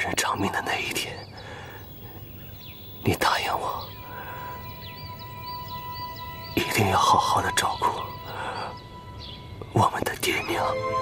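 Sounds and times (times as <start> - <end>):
person speaking: 3.0 - 4.3.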